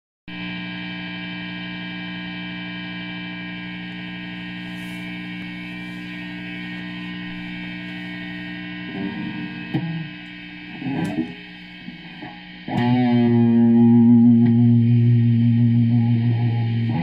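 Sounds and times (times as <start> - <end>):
guitar amplifier mains hum: 0.3 - 17.0.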